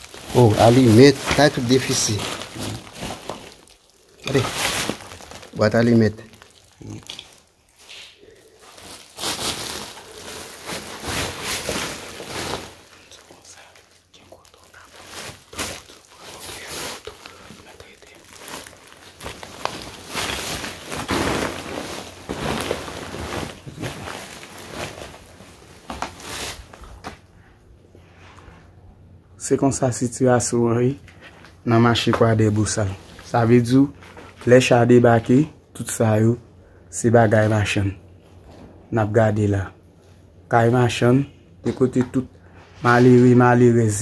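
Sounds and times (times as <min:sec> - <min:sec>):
plastic sacks crinkling underfoot: 0:00.0 - 0:27.3, 0:31.2 - 0:35.5.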